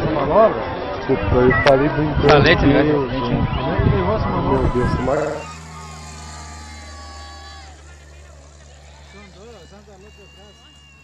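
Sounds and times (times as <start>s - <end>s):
propeller plane engine droning: 2.4s - 11.0s.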